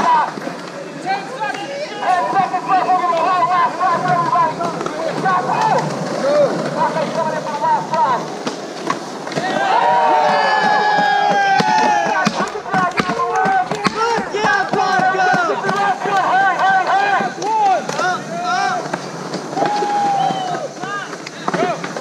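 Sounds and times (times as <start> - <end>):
skateboards clacking on concrete: 0.0 - 22.0
young voices shouting: 1.0 - 7.8, 9.3 - 18.9, 19.5 - 21.8.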